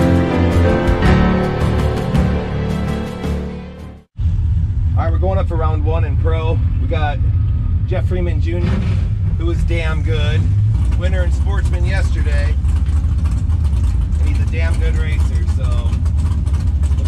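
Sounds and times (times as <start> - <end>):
background music: 0.0 - 4.1
car engine running at low revs: 4.2 - 17.0
man talking: 9.4 - 10.4, 11.0 - 12.6, 14.2 - 16.0.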